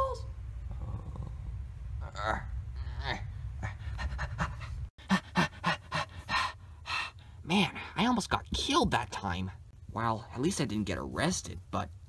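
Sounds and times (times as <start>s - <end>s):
low rumble: 0.0s - 4.9s
person panting: 3.6s - 7.4s.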